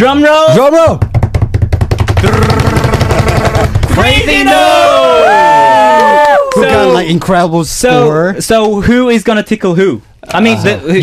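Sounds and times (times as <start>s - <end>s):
rapid drum roll: 1.0s - 4.5s.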